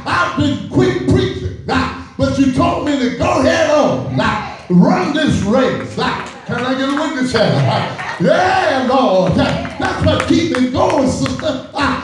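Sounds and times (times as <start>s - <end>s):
preacher chanting a sermon: 0.0s - 12.0s.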